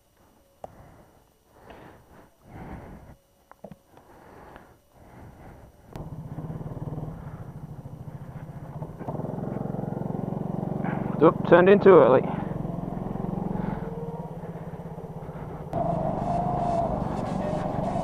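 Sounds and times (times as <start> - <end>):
go-kart engine running: 6.0 - 18.0.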